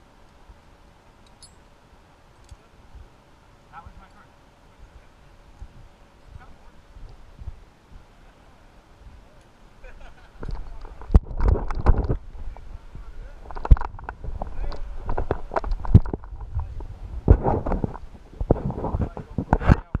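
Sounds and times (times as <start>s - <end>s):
wind rumble on microphone: 4.7s - 20.0s.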